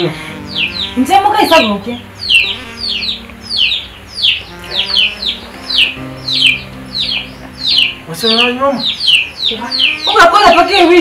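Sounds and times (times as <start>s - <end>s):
background music low notes: 0.0s - 11.0s
bird chirping: 0.2s - 11.0s.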